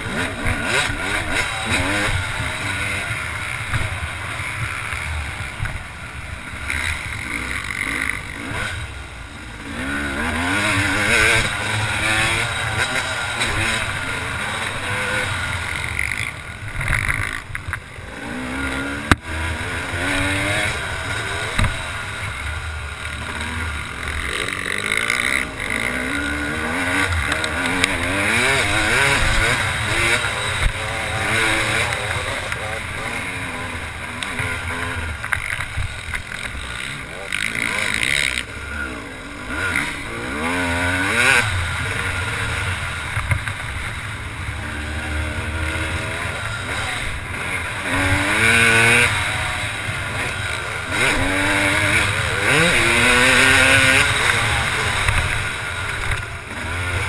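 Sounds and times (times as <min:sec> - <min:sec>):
motocross engine revving: 0:00.0 - 0:57.0.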